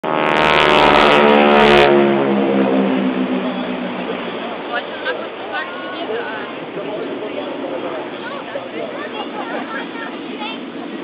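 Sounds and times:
aircraft flying past overhead: 0.0 - 11.0.

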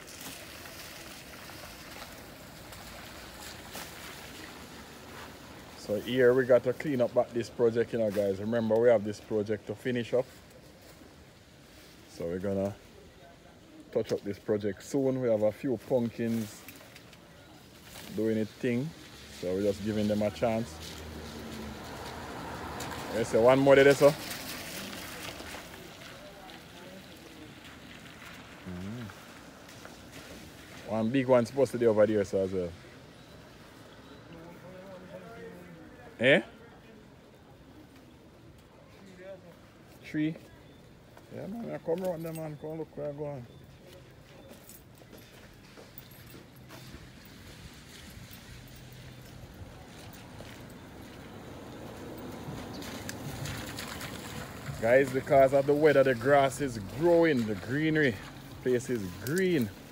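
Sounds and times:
weeds rustling and crackling: 0.0 - 35.6, 39.6 - 59.9
faint voices: 22.9 - 29.6.

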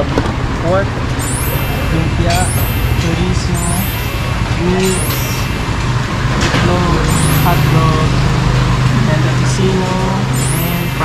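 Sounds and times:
people talking: 0.0 - 1.0, 1.7 - 5.5, 6.4 - 11.0
low motor hum: 0.0 - 11.0.

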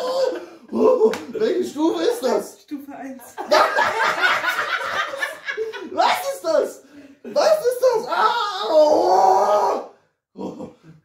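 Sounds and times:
man groaning: 8.1 - 11.0.

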